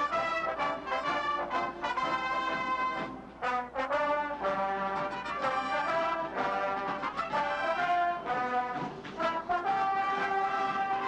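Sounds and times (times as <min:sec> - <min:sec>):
brass band playing held chords: 0:00.0 - 0:11.0.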